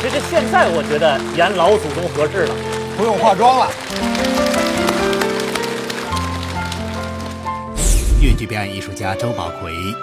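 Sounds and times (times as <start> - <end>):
audience applauding: 0.0 - 7.6
background music of held notes: 0.0 - 7.8, 8.4 - 10.0.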